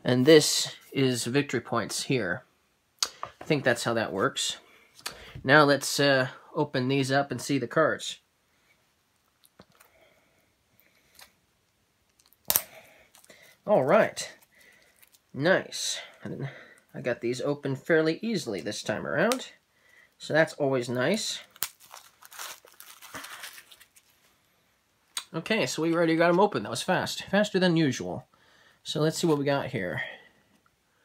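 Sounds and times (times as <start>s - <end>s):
plastic wrap crinkling: 14.2s - 15.4s, 21.4s - 24.3s.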